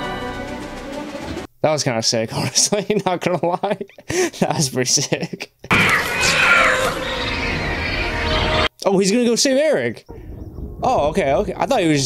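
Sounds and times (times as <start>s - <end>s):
orchestral score: 0.0s - 1.5s
creature shrieking cry: 5.7s - 8.7s
low rumble: 5.8s - 8.7s, 10.1s - 12.0s.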